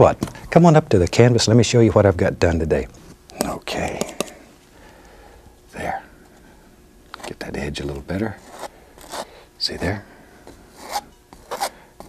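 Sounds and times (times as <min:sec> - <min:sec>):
paint brush rubbing canvas: 0:08.4 - 0:09.3, 0:10.7 - 0:11.7.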